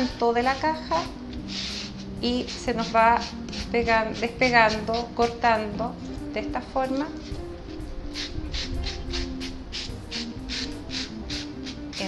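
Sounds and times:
background music: 0:00.0 - 0:12.0
sandpaper rubbing wood: 0:00.4 - 0:05.4, 0:08.1 - 0:12.0.

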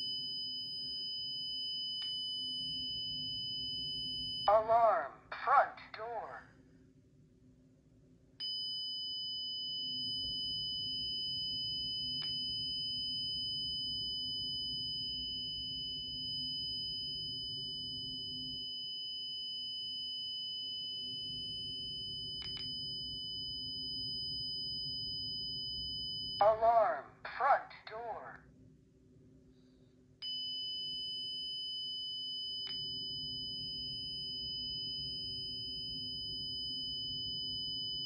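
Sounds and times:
high-pitched electronic alarm siren: 0:00.0 - 0:05.1, 0:08.4 - 0:27.0, 0:30.3 - 0:38.0.

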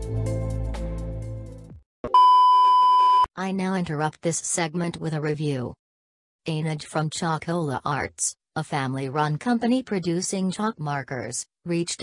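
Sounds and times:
high test tone beep: 0:02.1 - 0:03.3.

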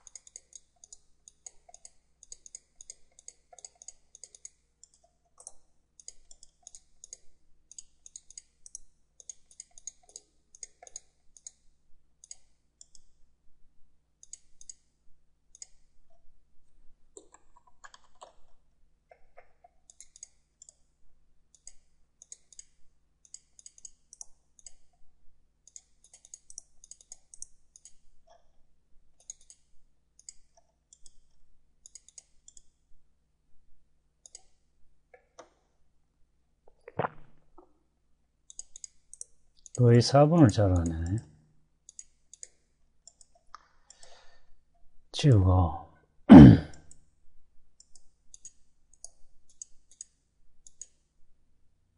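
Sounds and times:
computer mouse clicking: 0:00.0 - 0:13.2, 0:14.2 - 0:16.2, 0:17.1 - 0:20.9, 0:21.5 - 0:25.0, 0:25.6 - 0:28.5, 0:29.2 - 0:32.8, 0:34.2 - 0:35.6, 0:38.5 - 0:39.8, 0:41.9 - 0:44.3, 0:47.8 - 0:51.1.

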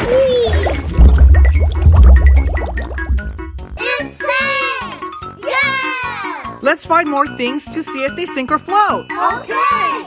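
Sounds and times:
upbeat children's music: 0:01.5 - 0:10.0.

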